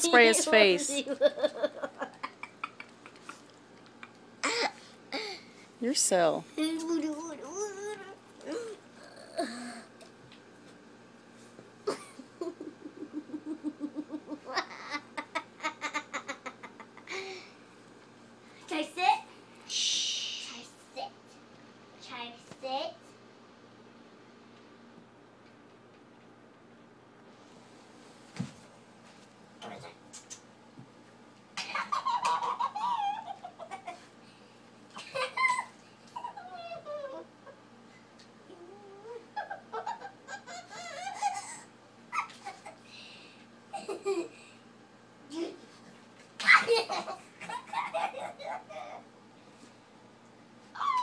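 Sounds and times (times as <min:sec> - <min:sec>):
girl's squealing laughter: 0:35.0 - 0:37.2, 0:39.4 - 0:42.6.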